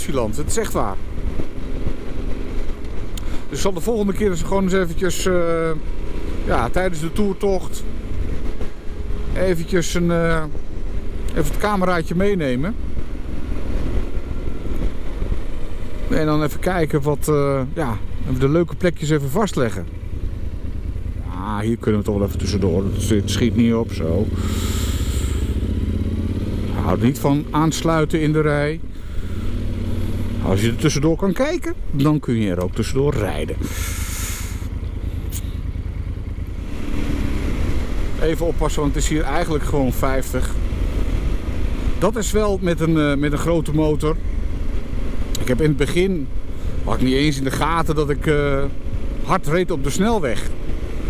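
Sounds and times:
wind and road noise: 0.0s - 51.0s
motorcycle engine cruising: 0.2s - 51.0s.

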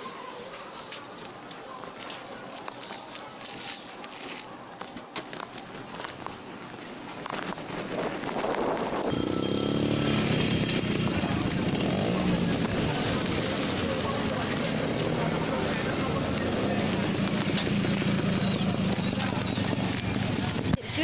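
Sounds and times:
steady engine noise: 6.4s - 21.0s
motor vehicle passing: 7.0s - 20.7s.

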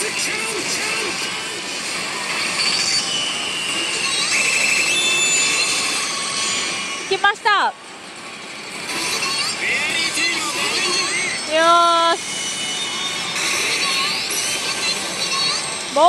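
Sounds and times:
slot machine electronic sound effects: 0.0s - 16.0s.

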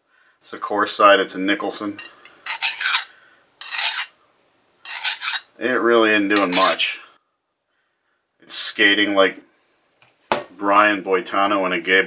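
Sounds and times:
hand file rasping on steel: 2.5s - 4.2s, 4.9s - 5.5s, 6.4s - 6.8s.

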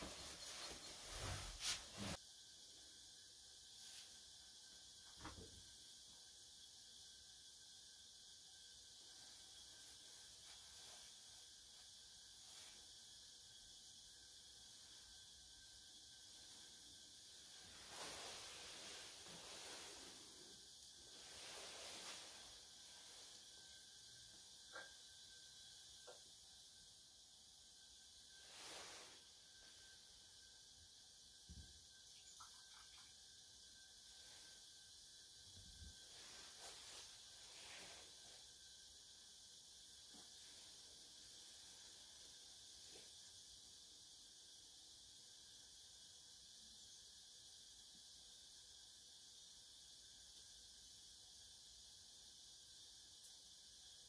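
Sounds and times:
room hiss: 0.0s - 54.0s.

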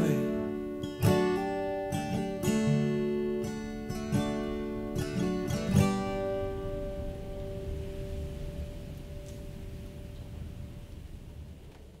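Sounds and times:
acoustic guitar chord ringing: 0.0s - 11.6s.

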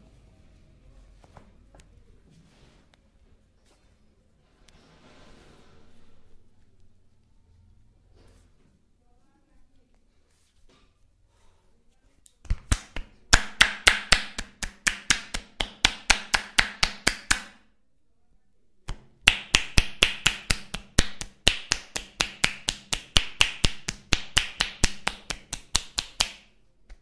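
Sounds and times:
palms clapping on bare back: 18.9s - 27.0s.

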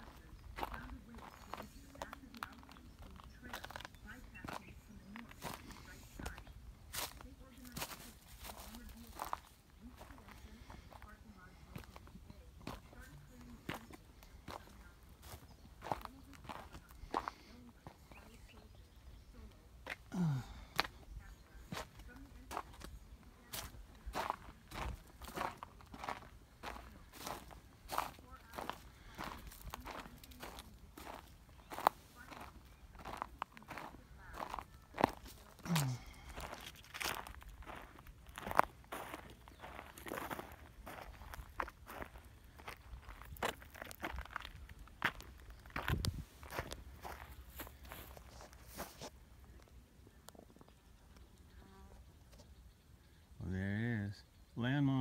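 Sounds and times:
footsteps crunching on dirt path: 0.0s - 52.6s.

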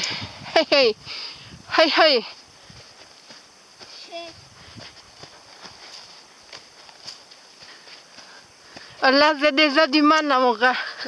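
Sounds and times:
footsteps on sand: 1.8s - 11.0s.

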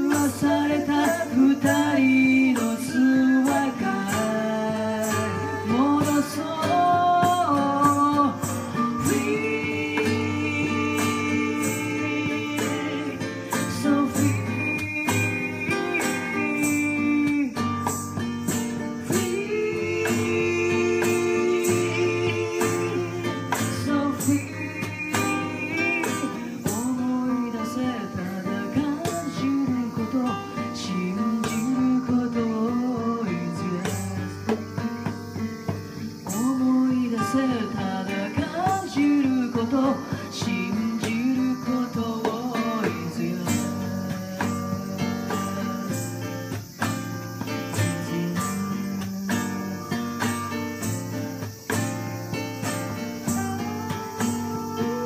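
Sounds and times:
person singing: 0.0s - 51.6s, 52.4s - 55.0s
strummed acoustic guitar: 0.0s - 55.0s.

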